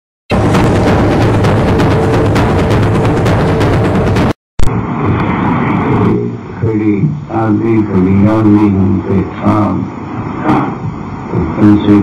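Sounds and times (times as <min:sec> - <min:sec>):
music: 0:00.3 - 0:04.4
recording noise with low hum: 0:00.3 - 0:12.0.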